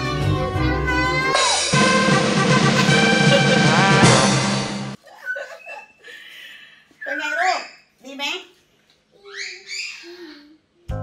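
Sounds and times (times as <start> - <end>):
background music: 0.0 - 5.0
child squealing and humming: 9.2 - 10.6.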